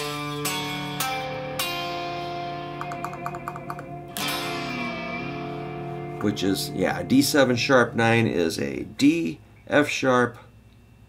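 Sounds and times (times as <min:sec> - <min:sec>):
electric guitar chord strummed: 0:00.0 - 0:08.8.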